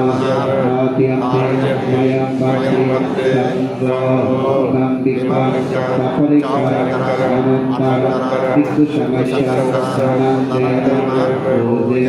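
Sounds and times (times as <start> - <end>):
voices chanting in monotone: 0.0 - 12.0.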